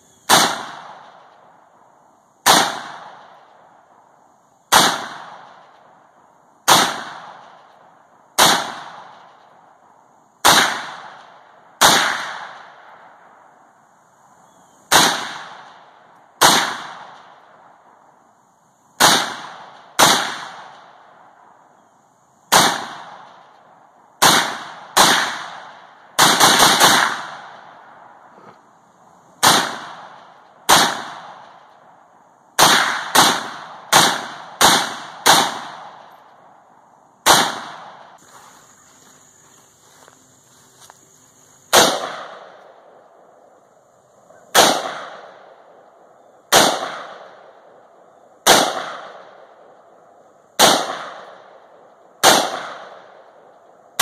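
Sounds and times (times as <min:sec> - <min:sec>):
rifle shots with echo: 0:00.2 - 0:01.8, 0:02.4 - 0:04.0, 0:04.7 - 0:09.8, 0:10.4 - 0:13.5, 0:14.9 - 0:18.0, 0:19.0 - 0:21.6, 0:22.5 - 0:28.3, 0:29.4 - 0:32.0, 0:32.6 - 0:36.6, 0:37.2 - 0:38.2, 0:41.7 - 0:43.5, 0:44.2 - 0:54.0.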